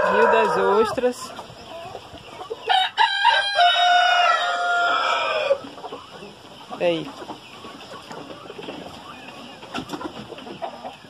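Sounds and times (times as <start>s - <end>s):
rooster crowing: 0.0s - 0.9s, 2.7s - 5.6s.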